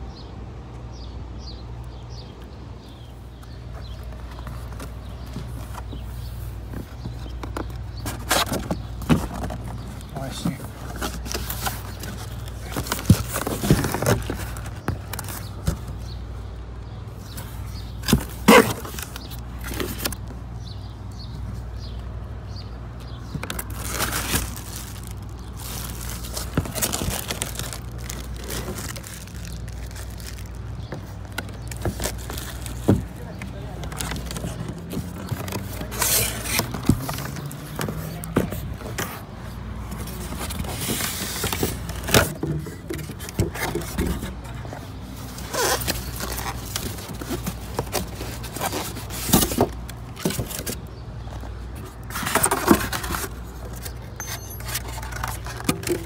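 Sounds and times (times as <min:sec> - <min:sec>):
cardboard box and styrofoam moved: 0:04.0 - 0:16.0, 0:23.5 - 0:39.2, 0:39.8 - 0:50.9, 0:51.7 - 0:56.0
plastic bags crinkling: 0:23.5 - 0:38.3.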